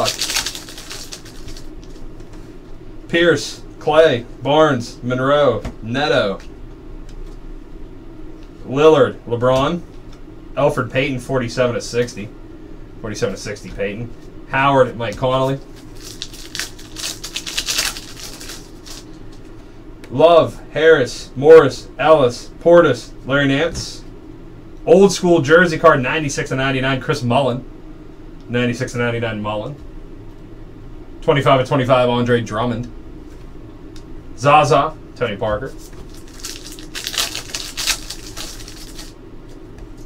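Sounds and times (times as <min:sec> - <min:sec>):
foil wrapper crinkling and tearing: 0:00.0 - 0:02.0, 0:15.7 - 0:19.2, 0:35.7 - 0:39.2
trading cards rustling: 0:00.0 - 0:02.5, 0:15.6 - 0:19.6, 0:35.7 - 0:39.6.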